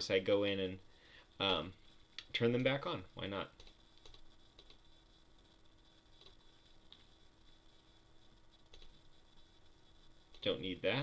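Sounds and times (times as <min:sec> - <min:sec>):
low steady hum: 0:00.0 - 0:11.0
computer mouse clicks: 0:03.6 - 0:04.8, 0:06.2 - 0:07.1, 0:08.7 - 0:09.0.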